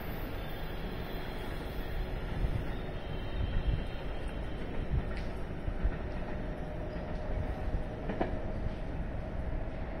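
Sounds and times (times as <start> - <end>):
distant train wheels rumbling: 0.0 - 10.0
train clack: 0.0 - 10.0.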